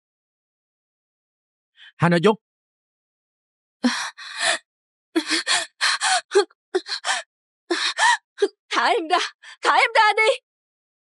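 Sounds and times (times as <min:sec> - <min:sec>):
woman gasping and panting: 0:03.8 - 0:04.6, 0:05.2 - 0:08.6.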